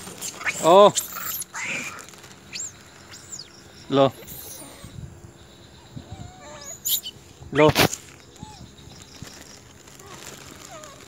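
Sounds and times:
monkeys squeaking: 0:00.0 - 0:05.0, 0:05.8 - 0:09.0.

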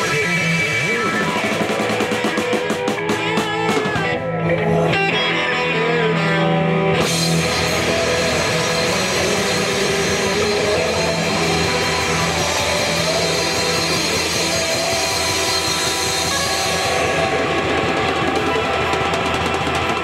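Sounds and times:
drums and cymbals: 0:00.0 - 0:04.4, 0:07.0 - 0:20.0
lead guitar bending pitch: 0:00.0 - 0:19.6
distorted electric guitars: 0:00.0 - 0:20.0.

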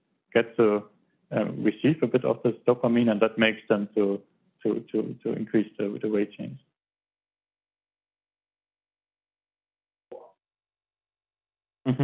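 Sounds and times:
man saying mm-hmm: 0:00.4 - 0:06.6.

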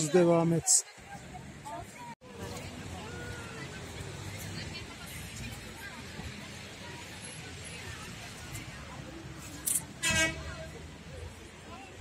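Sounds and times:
outdoor background noise: 0:00.0 - 0:12.0
vehicle horn toot: 0:10.0 - 0:10.5.

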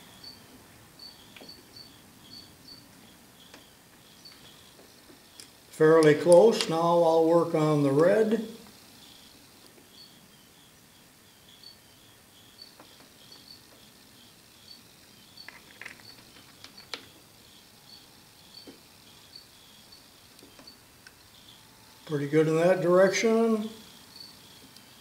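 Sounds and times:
faint high chirp: 0:00.0 - 0:04.8.

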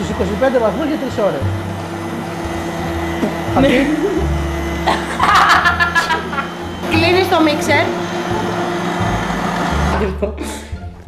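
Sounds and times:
electric stand mixer running: 0:00.0 - 0:10.2.

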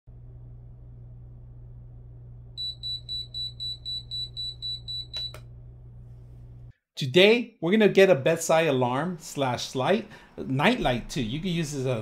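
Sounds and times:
low steady hum: 0:00.1 - 0:06.7
alarm clock beeping: 0:02.6 - 0:05.4
clicks: 0:05.1 - 0:05.5.

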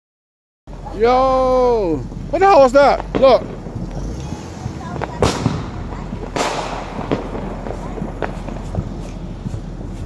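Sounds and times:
fireworks bangs with echo: 0:02.0 - 0:10.0
small firework pops: 0:03.0 - 0:09.7.

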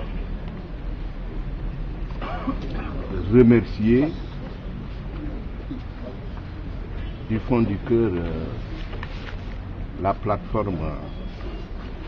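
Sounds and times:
murmur of crowd: 0:00.0 - 0:12.0
steady low hum: 0:00.0 - 0:12.0
man speaking: 0:02.9 - 0:04.4, 0:07.3 - 0:08.6, 0:10.0 - 0:11.2.

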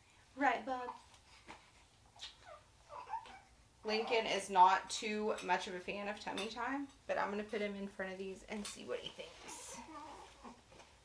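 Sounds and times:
newborn baby squeaks: 0:02.2 - 0:04.2, 0:09.8 - 0:10.5.

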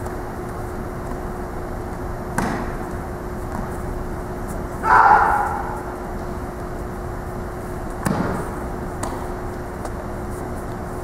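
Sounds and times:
steady hall hum: 0:00.0 - 0:11.0.

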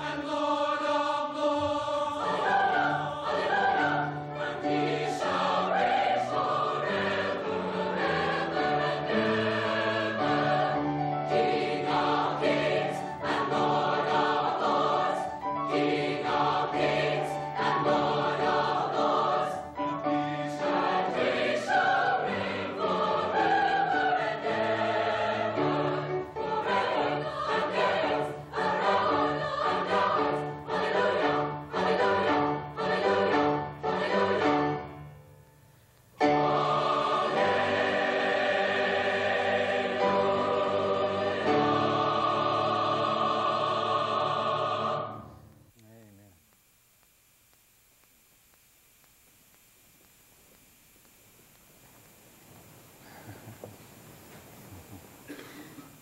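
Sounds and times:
mixed choir singing: 0:00.0 - 0:35.0, 0:36.2 - 0:45.5.

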